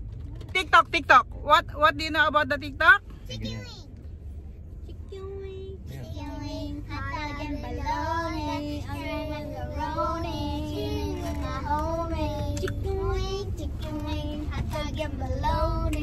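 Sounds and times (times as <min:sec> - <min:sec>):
car road noise rumble: 0:00.0 - 0:16.0
child singing wordless tune: 0:06.0 - 0:16.0.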